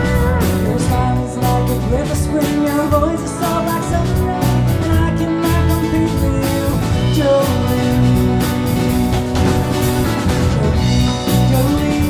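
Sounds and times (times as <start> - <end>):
acoustic guitar: 0.0 - 12.0
bass: 0.0 - 12.0
drums with cymbal beat: 0.0 - 12.0
pedal steel guitar: 0.0 - 12.0.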